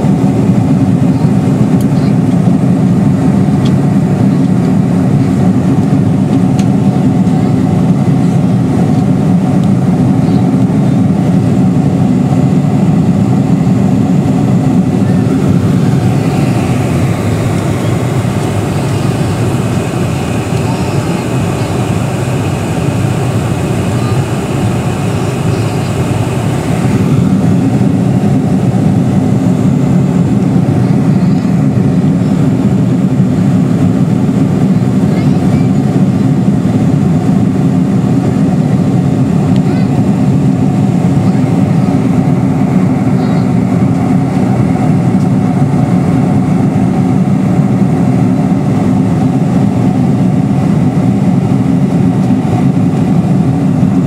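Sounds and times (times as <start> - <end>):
jet engines droning: 0.0 - 54.0.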